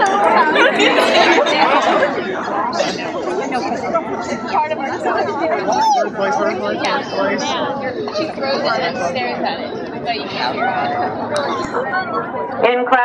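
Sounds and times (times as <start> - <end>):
crowd chattering: 0.0 - 13.0.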